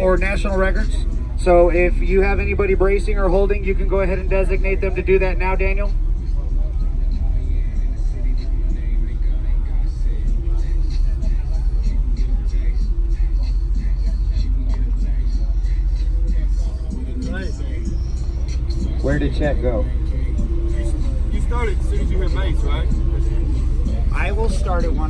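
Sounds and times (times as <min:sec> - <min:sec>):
steady low rumble: 0:00.0 - 0:25.0
crowd chatter: 0:04.0 - 0:25.0.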